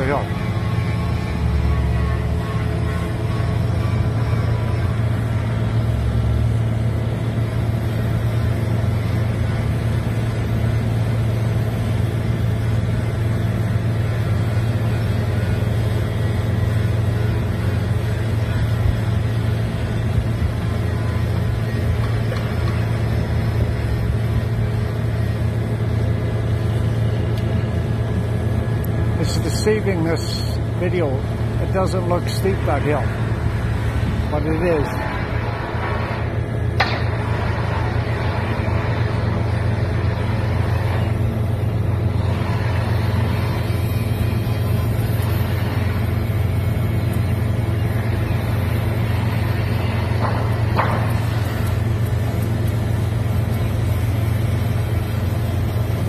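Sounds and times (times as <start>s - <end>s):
diesel engines running: 0.0s - 56.0s.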